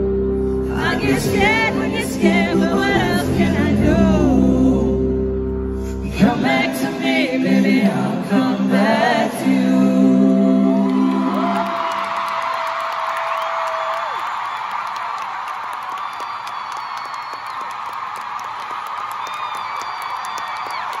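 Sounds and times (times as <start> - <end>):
crowd cheering and screaming: 10.7 - 21.0.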